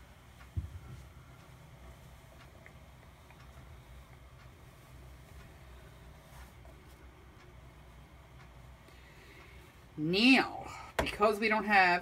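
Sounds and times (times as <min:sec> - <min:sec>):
low steady hum: 0:00.0 - 0:12.0
light ticks: 0:00.3 - 0:09.7.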